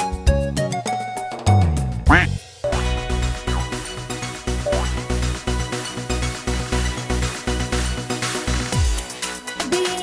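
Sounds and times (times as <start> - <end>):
upbeat electronic children's music: 2.0 - 5.5, 8.7 - 10.0
cartoon duck quack: 2.1 - 3.7, 4.7 - 4.9.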